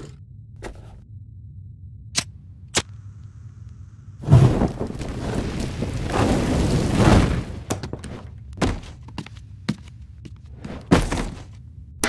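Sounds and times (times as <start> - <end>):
cartoon flames flaring up: 4.2 - 7.7.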